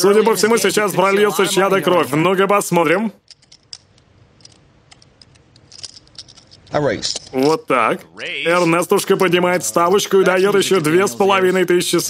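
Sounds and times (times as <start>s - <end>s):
poker chips clicking: 3.2s - 7.7s.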